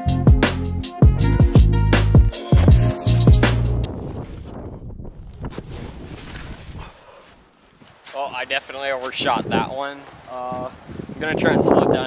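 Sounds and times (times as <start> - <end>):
electronic music with heavy beat: 0.0 - 3.9
wind buffeting microphone: 3.8 - 7.0, 8.3 - 12.0
snowboard skidding through snow: 5.2 - 7.9.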